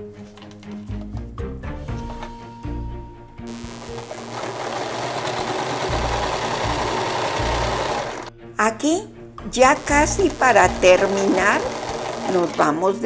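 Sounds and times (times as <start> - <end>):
background music: 0.0 - 13.0
electric sewing machine running: 3.5 - 8.3, 9.7 - 13.0.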